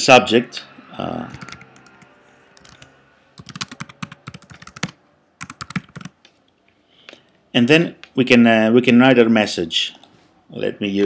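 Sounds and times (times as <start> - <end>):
keyboard typing: 1.3 - 6.3.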